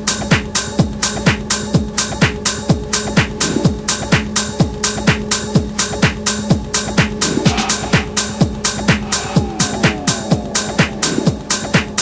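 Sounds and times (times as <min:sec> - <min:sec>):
kick drum beat: 0:00.0 - 0:12.0
off-beat hi-hats: 0:00.0 - 0:12.0
low drone: 0:07.4 - 0:12.0.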